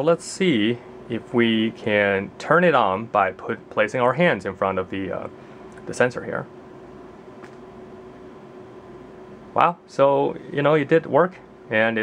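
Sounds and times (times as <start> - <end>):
faint steady hum: 0.0 - 12.0
steady low hiss: 0.0 - 12.0.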